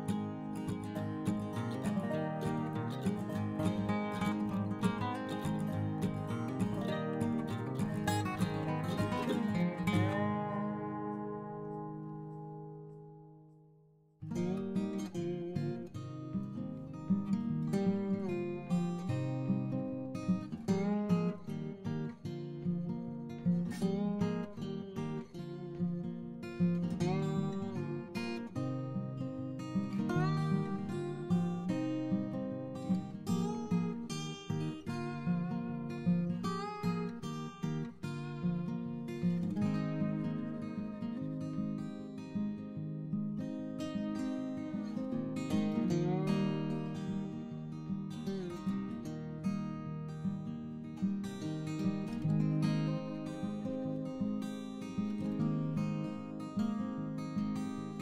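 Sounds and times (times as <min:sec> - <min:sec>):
acoustic guitar music: 0:00.0 - 0:58.0.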